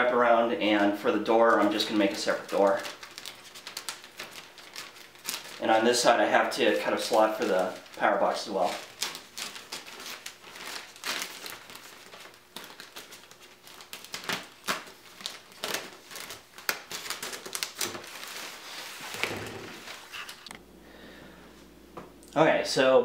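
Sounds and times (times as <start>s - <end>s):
plastic sheeting crinkling: 0.6s - 20.5s.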